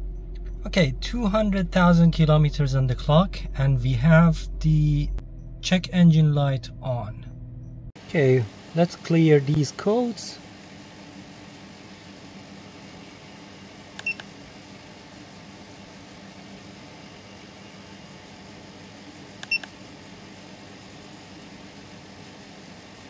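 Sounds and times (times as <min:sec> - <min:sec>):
faint steady hum: 0:00.0 - 0:23.0
short electronic beeps: 0:19.4 - 0:19.7.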